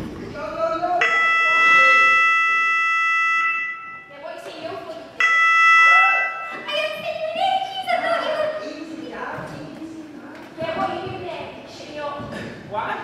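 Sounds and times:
voices: 0.2 - 13.0
electronic bell ringing: 1.0 - 4.1.

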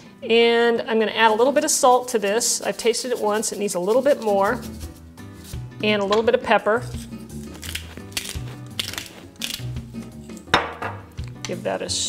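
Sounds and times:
soft background music: 0.0 - 12.0
pepper grinder rasping: 6.9 - 10.4.

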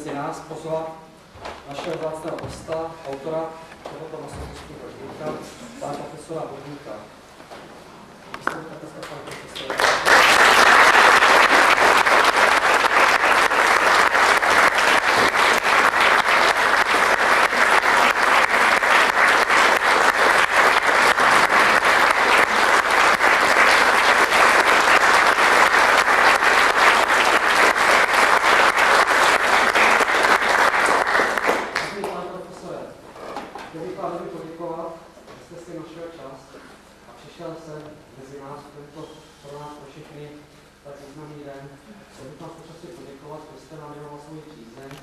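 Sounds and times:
audience applauding: 9.6 - 32.2.

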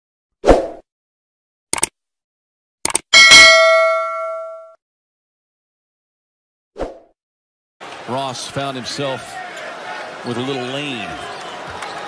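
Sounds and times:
quick double clicks: 1.7 - 2.0, 2.8 - 3.1
notification bell ding: 3.2 - 4.8.

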